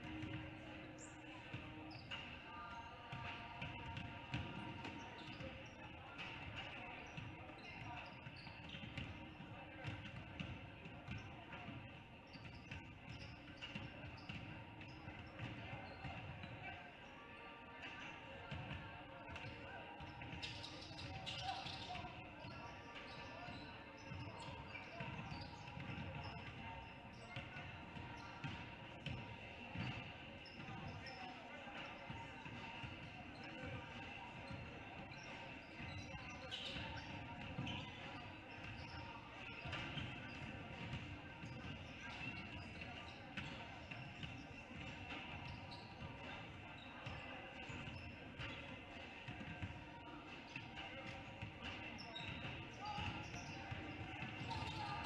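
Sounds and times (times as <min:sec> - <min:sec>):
murmur of voices: 0:00.0 - 0:55.0.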